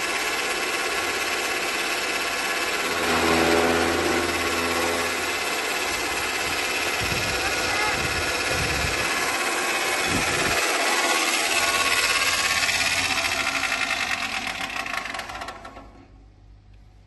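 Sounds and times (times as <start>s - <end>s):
chaff cutter chopping fodder: 4.0s - 15.7s.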